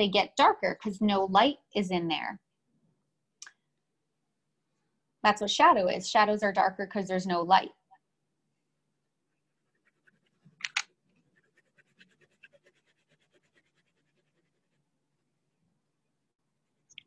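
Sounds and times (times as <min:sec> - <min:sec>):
colored pencil scratching on paper: 0:09.2 - 0:15.5.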